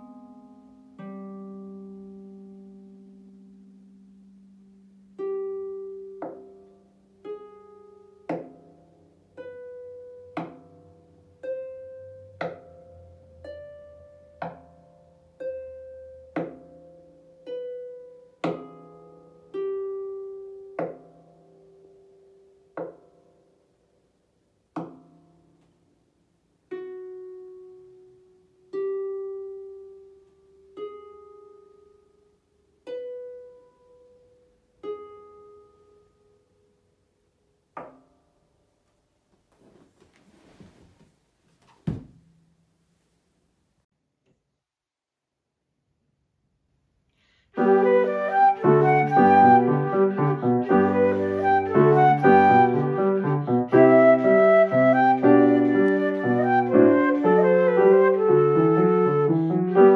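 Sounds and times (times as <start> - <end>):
harp notes plucked: 5.2 - 21.9
faint rustle: 39.3 - 42.2
sharp thump: 41.7 - 42.4.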